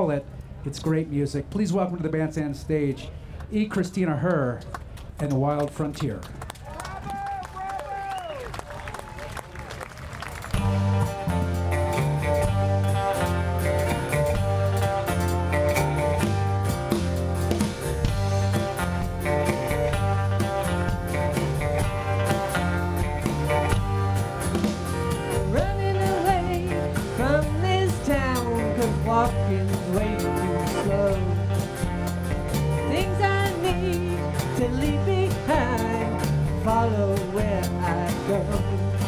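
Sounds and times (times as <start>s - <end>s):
country band playing: 10.4s - 39.0s.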